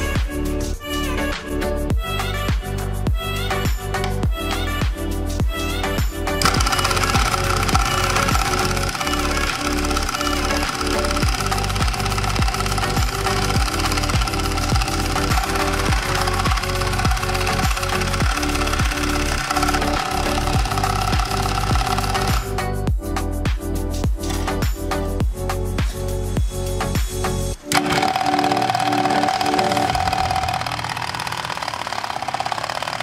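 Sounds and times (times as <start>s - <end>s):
background music with beat: 0.0s - 30.6s
saw blade rattling: 6.4s - 22.6s, 27.7s - 33.0s
scroll saw motor whine: 6.4s - 22.6s, 27.7s - 33.0s.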